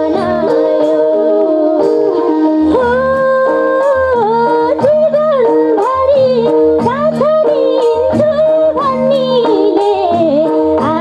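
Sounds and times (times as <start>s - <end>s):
sustained harmonium notes: 0.0s - 11.0s
woman singing into a microphone: 0.0s - 11.0s.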